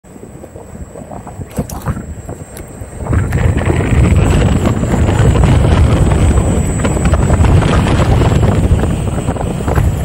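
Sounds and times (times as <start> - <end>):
wind buffeting microphone: 0.0 - 10.0
electric unicycle rumble: 0.1 - 10.0.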